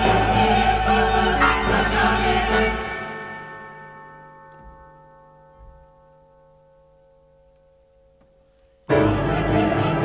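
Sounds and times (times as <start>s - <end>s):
choir and orchestra: 0.0s - 4.2s, 8.9s - 10.0s
bell-like chord ringing: 1.4s - 9.2s.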